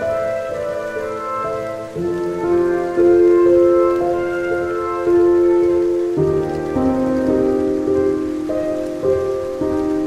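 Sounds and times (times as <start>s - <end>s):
rain falling on leaves: 0.0s - 10.0s
slow soft instrumental music: 0.0s - 10.0s.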